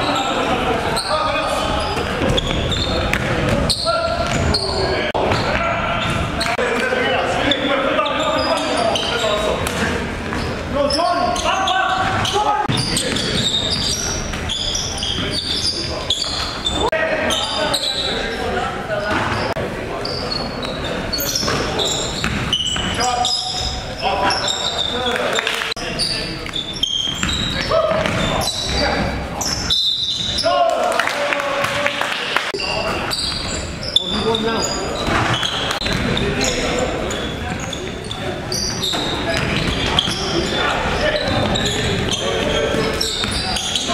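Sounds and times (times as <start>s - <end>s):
players calling out: 0.0s - 43.9s
basketball bouncing on gym floor: 2.2s - 4.6s, 27.2s - 28.4s, 35.0s - 36.2s.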